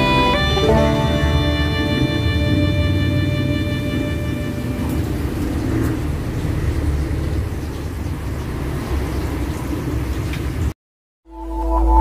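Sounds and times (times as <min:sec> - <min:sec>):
held music notes: 0:00.0 - 0:05.6.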